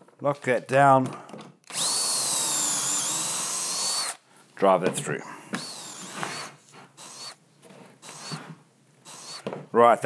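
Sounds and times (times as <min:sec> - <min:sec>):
cordless drill rasping into wood: 0:01.6 - 0:04.2, 0:05.5 - 0:07.4, 0:08.0 - 0:09.5.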